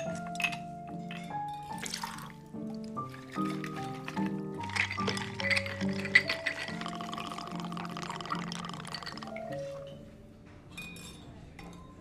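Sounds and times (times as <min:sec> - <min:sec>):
ice clinking in a glass jug: 0:00.0 - 0:02.4, 0:03.0 - 0:10.0
background music with held notes: 0:00.0 - 0:12.0
drink pouring over ice: 0:01.7 - 0:10.0.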